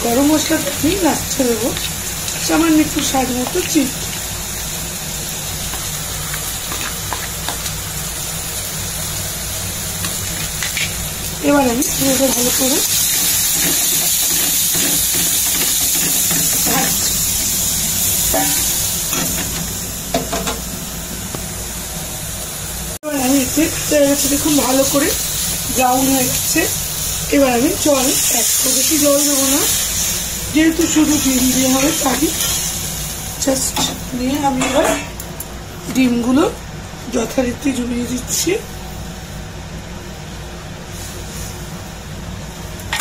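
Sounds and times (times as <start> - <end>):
spice paste sizzling in oil: 0.0 - 20.5, 21.5 - 34.6.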